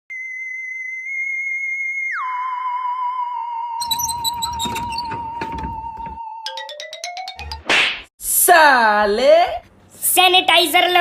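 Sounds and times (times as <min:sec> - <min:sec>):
high-pitched electronic tone: 0:02.2 - 0:06.6.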